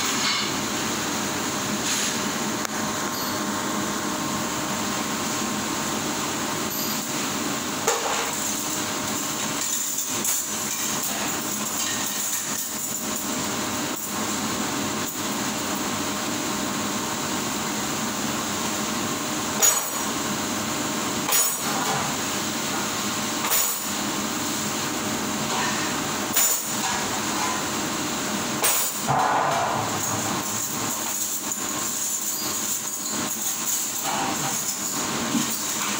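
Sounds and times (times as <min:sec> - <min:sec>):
machine noise with hiss: 0:00.0 - 0:35.9
clinks of metal cutlery: 0:07.9 - 0:13.3, 0:19.6 - 0:20.0, 0:21.3 - 0:22.0, 0:25.5 - 0:27.6, 0:30.0 - 0:35.9.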